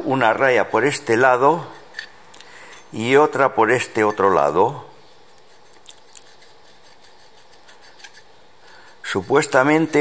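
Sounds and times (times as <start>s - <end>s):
caliper scraping on metal: 5.2s - 10.0s.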